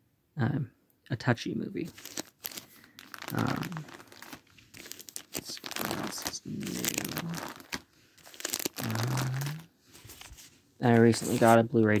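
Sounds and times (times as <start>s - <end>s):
plastic crinkling and rustling: 1.8s - 12.0s.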